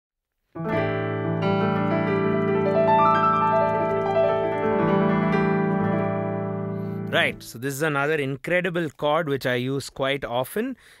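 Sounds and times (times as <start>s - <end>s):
piano chord ringing: 0.6s - 7.5s.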